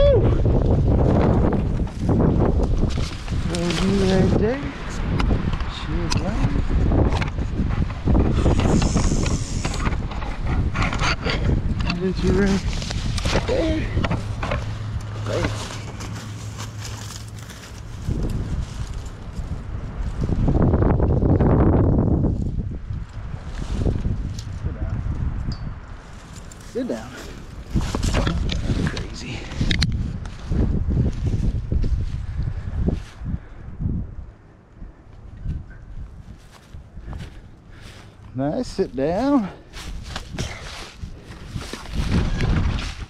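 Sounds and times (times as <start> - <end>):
dry leaves and brush crackling: 0.4 - 5.4, 11.8 - 33.4, 35.2 - 43.0.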